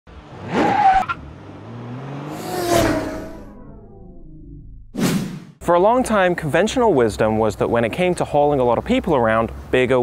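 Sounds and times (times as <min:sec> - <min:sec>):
car engine revving and passing by: 0:00.1 - 0:04.6.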